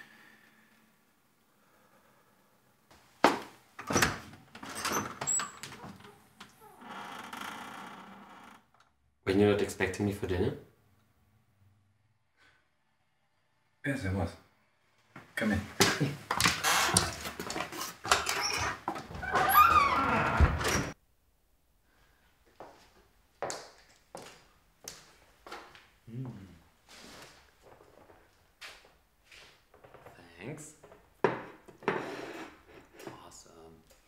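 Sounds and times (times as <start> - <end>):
door creaking squeal: 3.9 - 8.7, 18.1 - 21.0.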